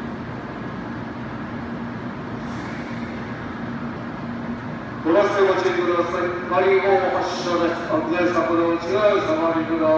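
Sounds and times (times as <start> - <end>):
train equipment humming: 0.0 - 9.9
brief high hiss: 2.4 - 4.0.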